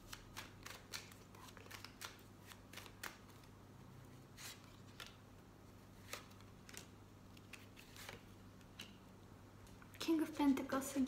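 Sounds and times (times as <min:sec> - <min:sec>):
cards being shuffled: 0:00.0 - 0:03.6, 0:04.3 - 0:05.2, 0:05.8 - 0:09.0.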